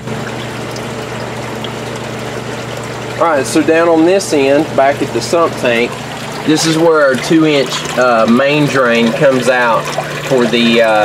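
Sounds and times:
steady low hum: 0:00.0 - 0:11.0
water pouring into tank: 0:00.0 - 0:11.0.

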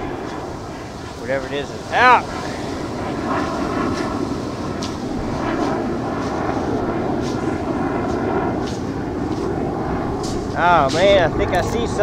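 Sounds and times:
surf washing up beach: 0:00.0 - 0:11.5
wind on microphone: 0:00.0 - 0:12.0.

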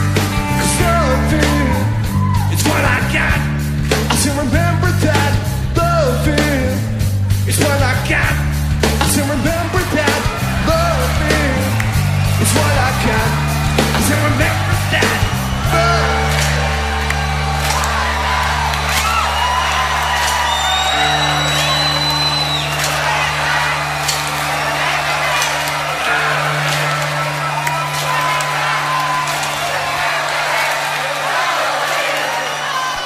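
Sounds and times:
crowd cheering and whooping: 0:00.0 - 0:03.3, 0:09.0 - 0:33.0
live band sustained chords: 0:00.0 - 0:31.9.

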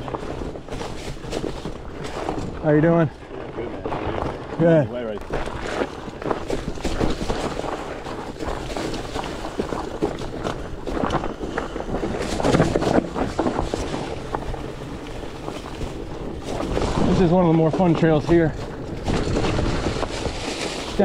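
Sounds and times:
fat tires rolling over rock: 0:00.0 - 0:21.0
wind noise on microphone: 0:00.0 - 0:21.0
bike knocks and rattles: 0:05.3 - 0:21.0.

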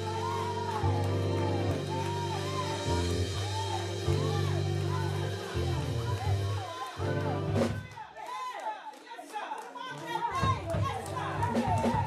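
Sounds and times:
church keyboard music: 0:00.0 - 0:07.9, 0:10.2 - 0:12.0
voices calling out in worship: 0:00.0 - 0:12.0.

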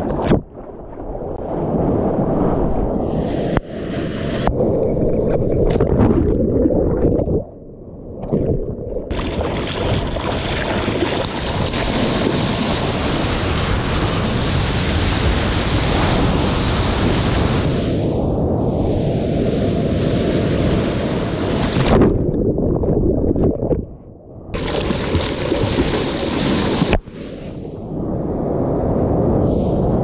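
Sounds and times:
sea water rushing and splashing: 0:00.0 - 0:07.4, 0:08.4 - 0:23.5, 0:24.6 - 0:30.0
wind on microphone: 0:00.0 - 0:07.5, 0:08.2 - 0:30.0.

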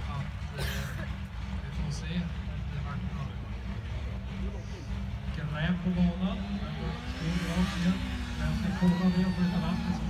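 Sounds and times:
faint voices: 0:00.0 - 0:10.0
vehicle engine rumble: 0:00.0 - 0:10.0.

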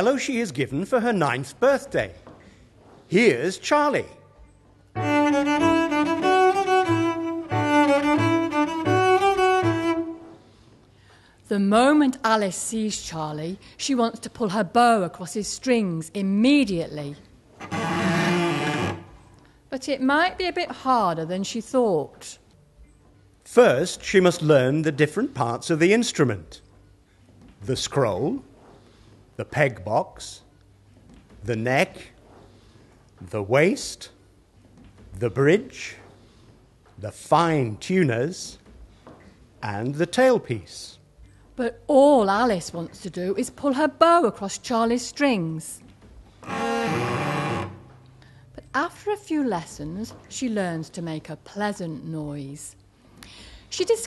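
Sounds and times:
scratchy bowed cello note: 0:05.0 - 0:10.3, 0:17.6 - 0:19.3, 0:46.4 - 0:48.1.

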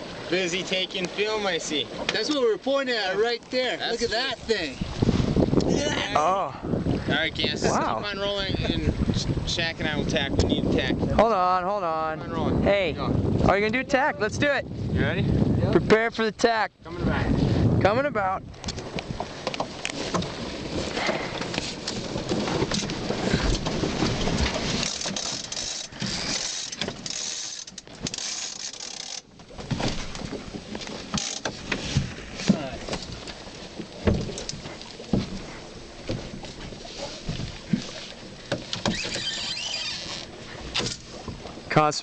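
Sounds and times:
water rushing along hull: 0:00.0 - 0:42.0
wind buffeting microphone: 0:03.3 - 0:26.4
rigging knocking and rattling: 0:18.7 - 0:33.1.

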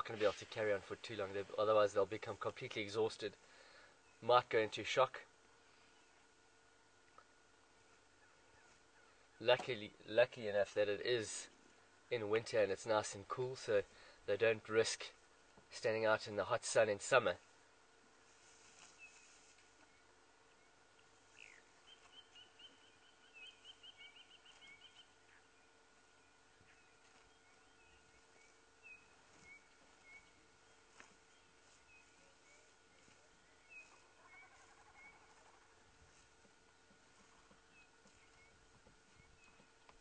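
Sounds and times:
faint steady hum: 0:00.0 - 0:40.0
small birds chirping: 0:00.1 - 0:40.0
bird trill: 0:21.3 - 0:25.4.

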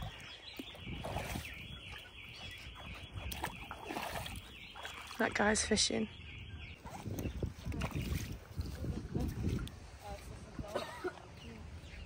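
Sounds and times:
shallow water: 0:00.0 - 0:12.0
wind: 0:00.0 - 0:12.0.

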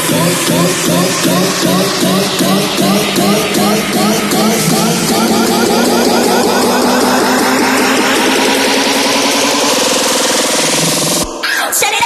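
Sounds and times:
fast repeated synth figure: 0:00.0 - 0:11.4
noise sweep rising: 0:00.0 - 0:11.4.

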